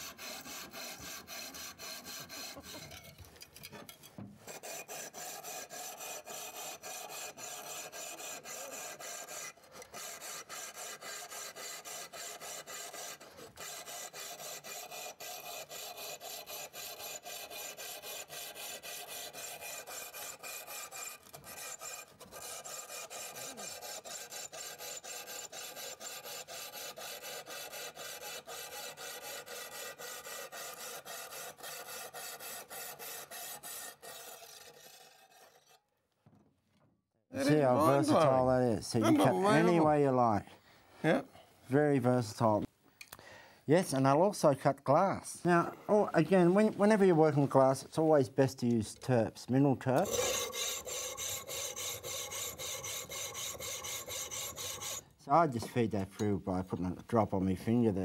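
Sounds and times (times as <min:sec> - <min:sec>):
saw cutting ceramic tile: 0:00.0 - 0:03.3, 0:04.4 - 0:35.9, 0:49.9 - 0:55.2.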